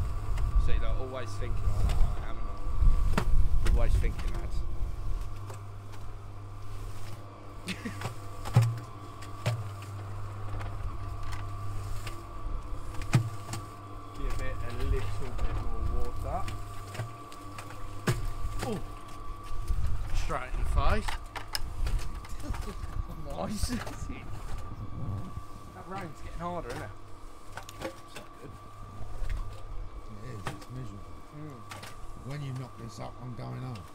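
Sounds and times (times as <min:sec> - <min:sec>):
cement mixer running: 0:00.0 - 0:33.9
voices: 0:00.6 - 0:02.7, 0:03.6 - 0:06.0, 0:12.1 - 0:21.2, 0:22.2 - 0:33.9
person laughing: 0:07.6 - 0:08.2.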